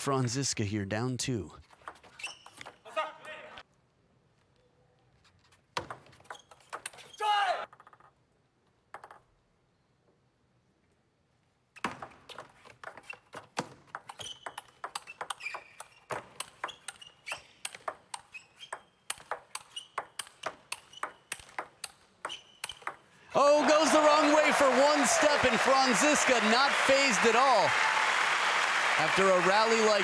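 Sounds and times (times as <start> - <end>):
table tennis ball clicks: 12.0 - 23.1.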